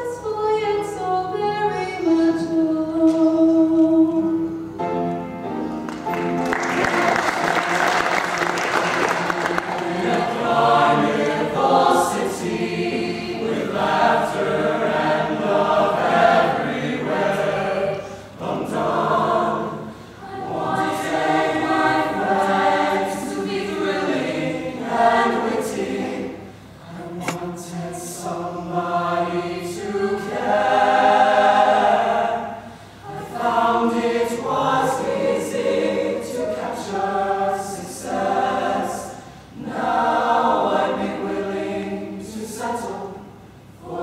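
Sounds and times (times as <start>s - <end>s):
choir singing in harmony: 6.4s - 44.0s.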